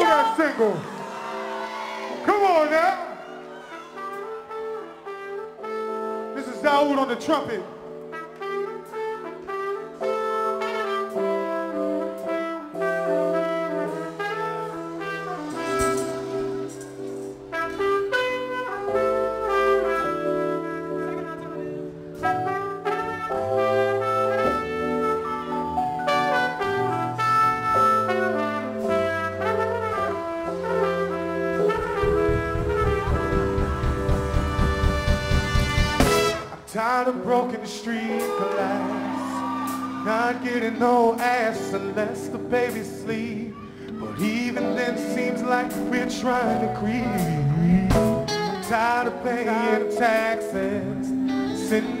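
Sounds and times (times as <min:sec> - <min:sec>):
soul band playing: 0:00.0 - 0:52.0
trumpet solo: 0:00.0 - 0:52.0
rapid drum hits: 0:31.8 - 0:36.5.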